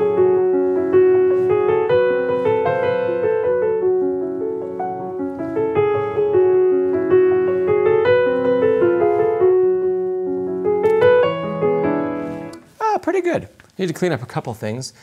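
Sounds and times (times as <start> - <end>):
slow quiet grand piano: 0.0 - 12.9.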